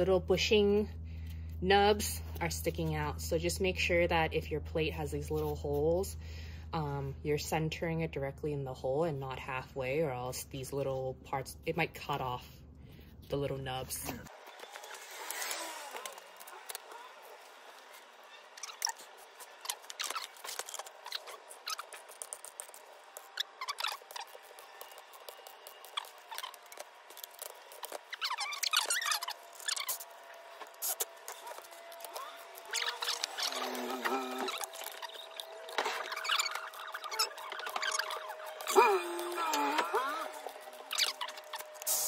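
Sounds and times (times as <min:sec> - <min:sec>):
short metal squeaks: 0:14.5 - 0:38.8.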